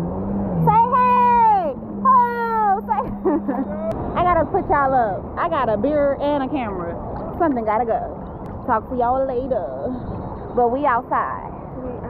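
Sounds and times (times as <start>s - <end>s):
woman calling out: 0.6s - 3.2s.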